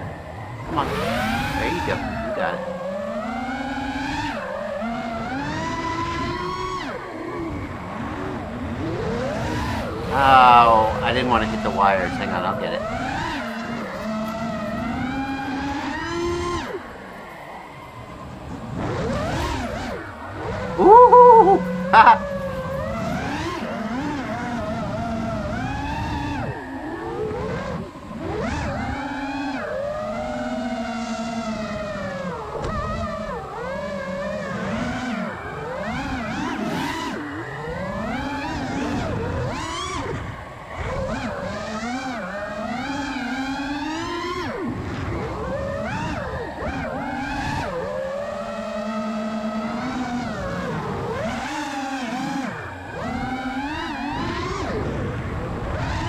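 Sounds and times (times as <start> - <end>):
drone motors whining: 0.0 - 56.0
loud wavering tone: 20.6 - 22.7.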